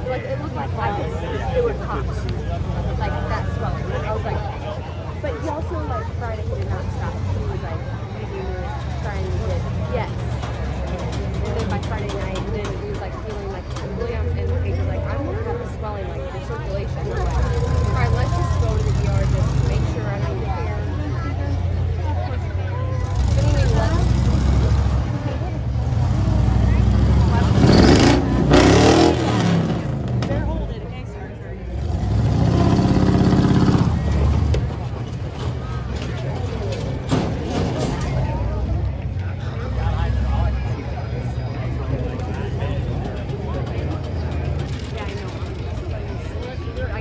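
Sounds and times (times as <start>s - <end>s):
people talking: 0.0s - 47.0s
monster truck engine revving: 17.0s - 21.9s, 22.9s - 30.8s, 31.6s - 46.0s.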